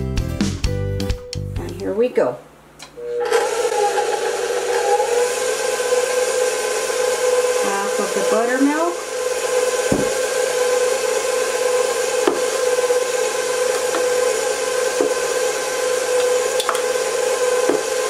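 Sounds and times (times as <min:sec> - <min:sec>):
stand mixer motor whine: 0:03.0 - 0:18.0.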